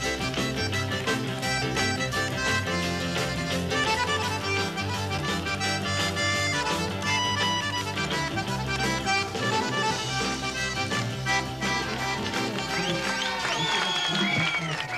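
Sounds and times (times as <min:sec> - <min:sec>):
button accordion playing: 0:00.0 - 0:14.1
bass: 0:00.0 - 0:14.9
drums rock and roll beat: 0:00.0 - 0:14.9.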